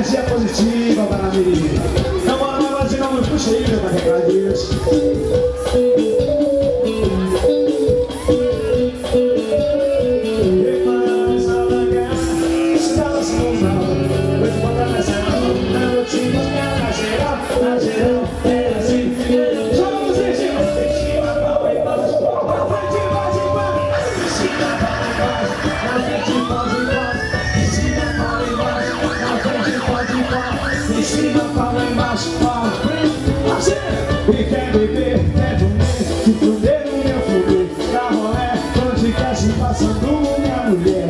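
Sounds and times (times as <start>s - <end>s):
live band over loudspeakers: 0.0s - 41.0s
person singing: 0.0s - 41.0s
siren-like sound effect: 20.8s - 31.8s.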